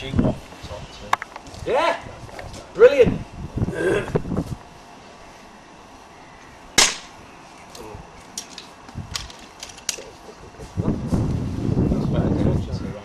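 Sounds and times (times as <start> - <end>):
rifle shot: 6.8 - 7.2.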